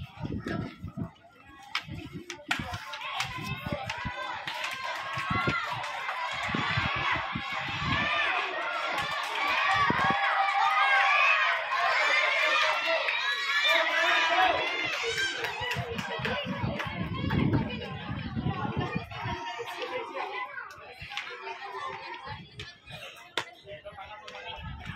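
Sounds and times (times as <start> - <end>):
crowd shouting and cheering: 0.0 - 24.9.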